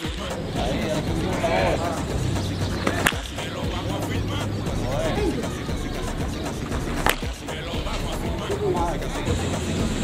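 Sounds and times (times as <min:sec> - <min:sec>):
background music: 0:00.0 - 0:10.0
baseball bat cracking ball: 0:02.7 - 0:03.5, 0:06.7 - 0:07.5.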